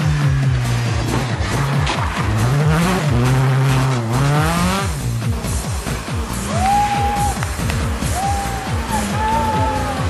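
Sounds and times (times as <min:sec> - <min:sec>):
car engine revving: 0:00.0 - 0:06.5
music with a steady beat: 0:00.0 - 0:10.0.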